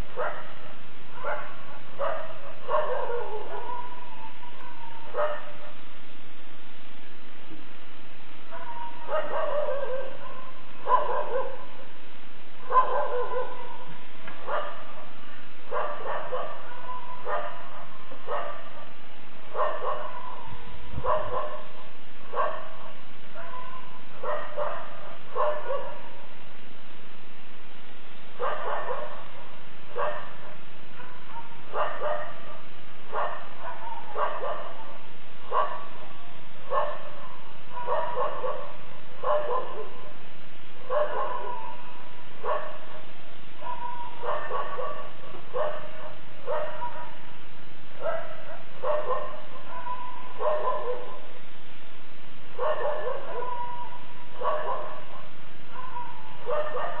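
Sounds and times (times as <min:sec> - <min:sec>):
faint low hum: 0:00.0 - 0:57.0
dog barking: 0:00.1 - 0:05.8, 0:08.5 - 0:11.8, 0:12.6 - 0:26.3, 0:28.4 - 0:40.2, 0:40.8 - 0:47.2, 0:48.0 - 0:51.3, 0:52.6 - 0:57.0.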